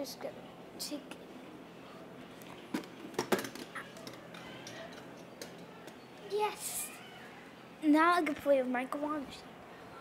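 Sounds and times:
plastic toys clicking: 2.7 - 6.0.

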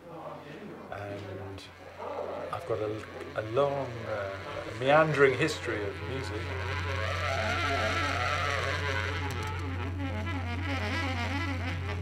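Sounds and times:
saxophone holding low note: 1.8 - 12.0.

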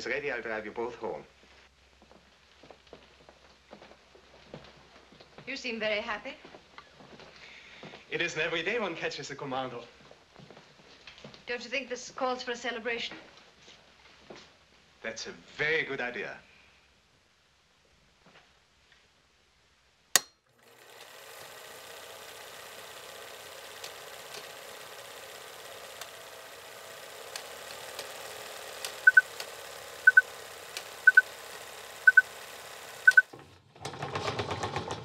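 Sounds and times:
film projector running: 20.5 - 35.0
short double beeps: 33.1 - 33.3.

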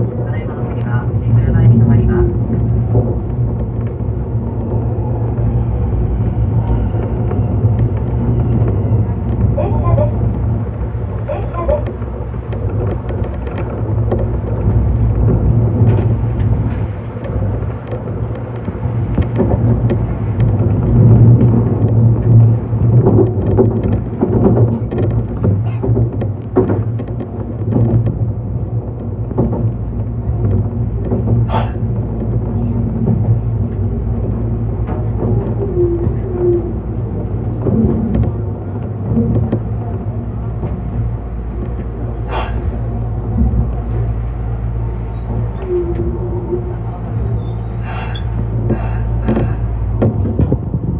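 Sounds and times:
electric train rumbling: 0.0 - 50.9
wheels clicking over track: 0.0 - 50.9
clicks and squeaks over wheels: 28.9 - 50.3.

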